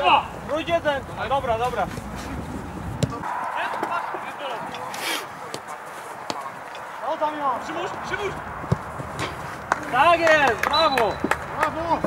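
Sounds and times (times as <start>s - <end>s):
ball being kicked: 3.0s - 3.9s, 8.6s - 9.4s.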